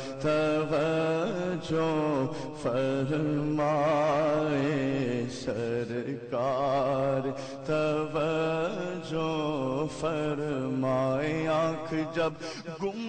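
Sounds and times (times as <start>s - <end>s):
man singing with vibrato: 0.0s - 13.0s.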